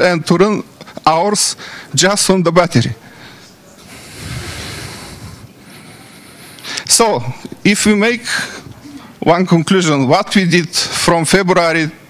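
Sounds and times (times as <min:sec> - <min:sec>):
soft rushing noise: 0:03.7 - 0:06.5.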